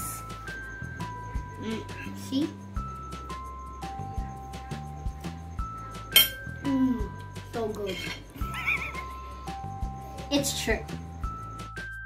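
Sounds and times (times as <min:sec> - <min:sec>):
background music sustained tones: 0:00.0 - 0:12.0.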